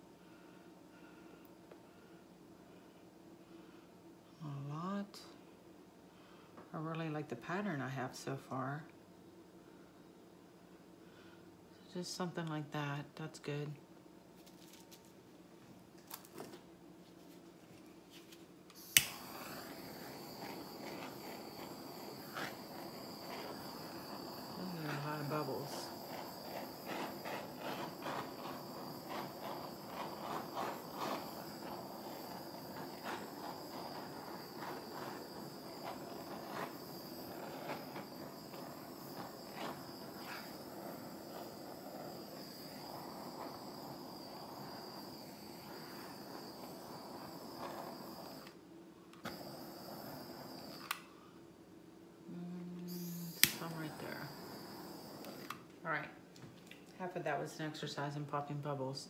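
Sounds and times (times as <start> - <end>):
handheld torch hissing: 18.7 - 48.6, 49.2 - 51.2, 52.9 - 55.7.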